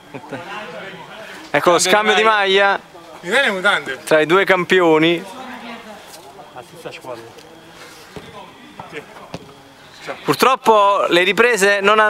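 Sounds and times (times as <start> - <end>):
faint background chatter: 0.0 - 11.9.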